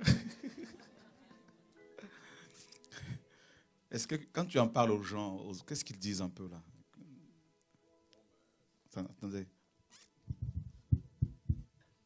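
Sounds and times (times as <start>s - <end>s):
microphone handling knocks: 10.3s - 11.7s.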